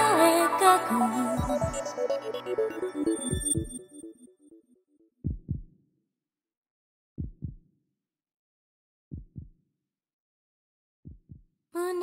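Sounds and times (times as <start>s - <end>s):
heartbeat lub-dub beats: 0.0s - 3.9s, 5.3s - 5.8s, 7.2s - 7.6s, 9.1s - 9.6s, 11.1s - 11.5s.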